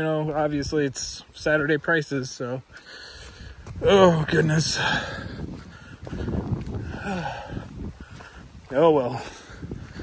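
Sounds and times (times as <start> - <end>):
wind rumbling on microphone: 0.0 - 1.9, 3.0 - 10.0
footsteps on dirt trail: 0.0 - 10.0.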